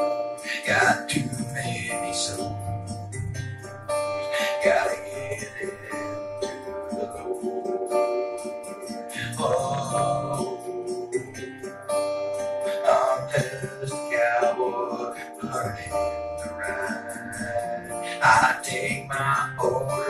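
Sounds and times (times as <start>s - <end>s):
acoustic guitar strumming chords: 0.0s - 20.0s.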